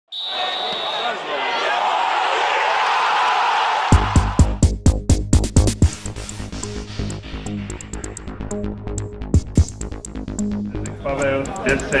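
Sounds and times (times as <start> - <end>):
voices: 0.2 - 2.8, 10.9 - 12.0
electronic music with beat: 3.9 - 12.0.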